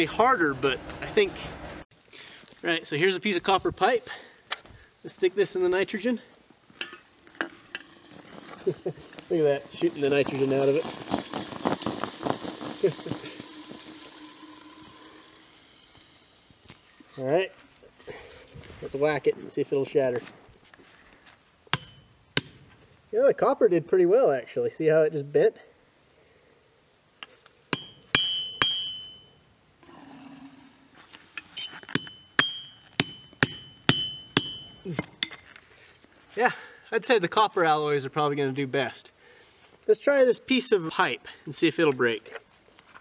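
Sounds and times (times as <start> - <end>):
liquid nitrogen boiling hiss: 7.6 - 17.1
hammer striking metal pipe: 21.7 - 22.6, 27.7 - 29.4, 31.4 - 35.4.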